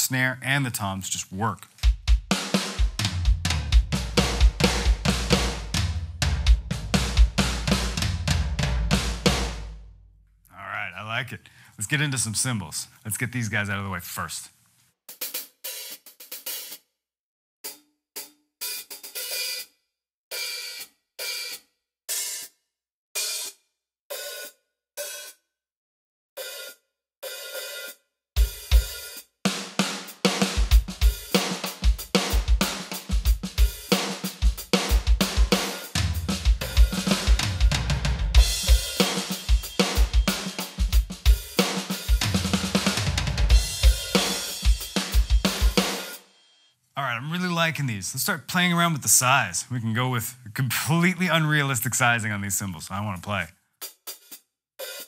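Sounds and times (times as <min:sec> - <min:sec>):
electronic drum groove: 0:01.1 - 0:09.6, 0:15.1 - 0:16.8, 0:28.4 - 0:46.3, 0:50.9 - 0:55.0
electronic hi-hat hits: 0:38.4 - 0:46.3.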